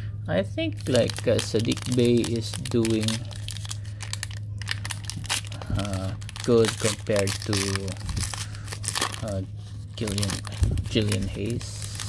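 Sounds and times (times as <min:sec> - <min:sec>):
steady low hum: 0:00.0 - 0:12.0
plastic wrapper tearing and crinkling: 0:00.8 - 0:12.0.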